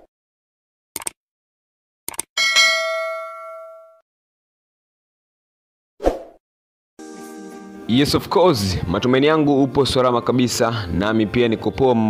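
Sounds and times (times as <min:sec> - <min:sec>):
short clicks: 0:01.0 - 0:01.2, 0:02.1 - 0:02.3
bright bell ding: 0:02.4 - 0:04.0.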